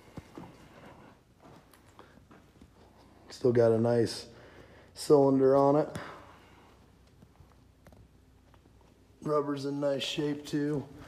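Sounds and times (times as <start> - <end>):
soft footsteps on dirt: 0.0 - 9.4.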